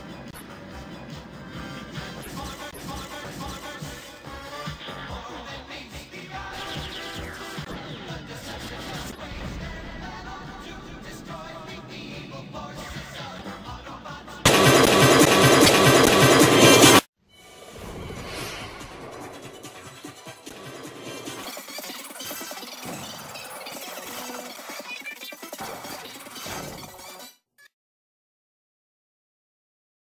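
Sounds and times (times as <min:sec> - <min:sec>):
cartoon music with sound effects: 0:00.0 - 0:27.7.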